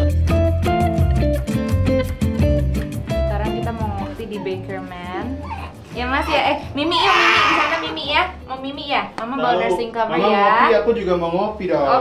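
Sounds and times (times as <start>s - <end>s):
background music: 0.0s - 12.0s
high wavering whimpering cries: 5.3s - 8.1s.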